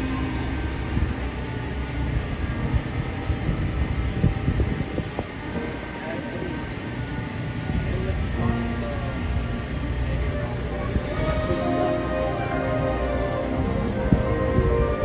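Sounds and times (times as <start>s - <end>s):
heavy low rumble: 0.0s - 15.0s
crowd voices: 5.1s - 15.0s
marching band playing held notes: 10.9s - 15.0s.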